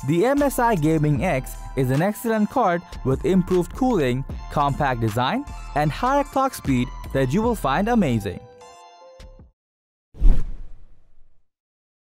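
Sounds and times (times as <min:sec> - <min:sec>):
whoosh sweeping down: 0:10.2 - 0:11.4.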